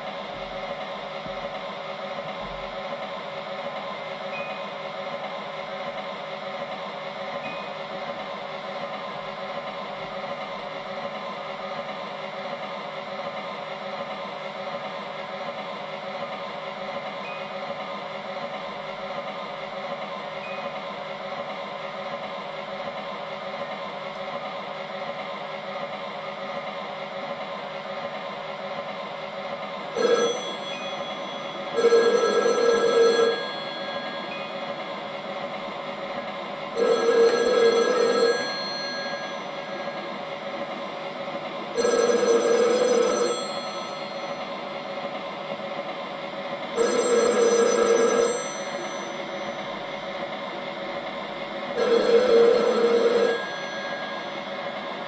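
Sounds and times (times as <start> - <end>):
telephone ringing: 30.0 - 34.9, 36.8 - 40.2, 41.7 - 44.5, 46.8 - 49.9, 51.8 - 55.0.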